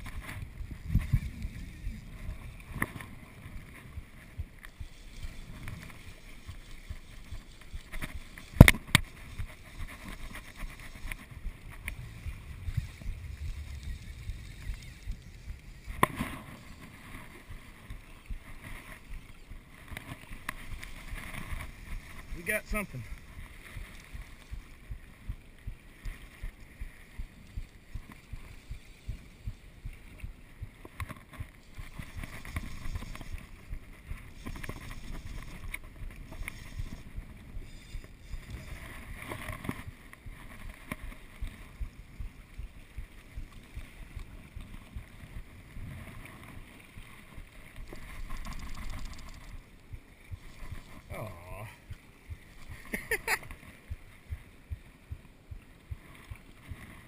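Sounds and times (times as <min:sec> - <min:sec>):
wind buffeting microphone: 0:00.0 - 0:04.9, 0:10.5 - 0:18.4.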